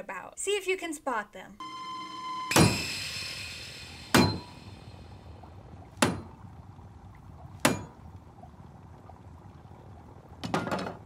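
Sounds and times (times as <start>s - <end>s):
sharp ringing hits: 1.6s - 3.4s, 4.0s - 4.8s.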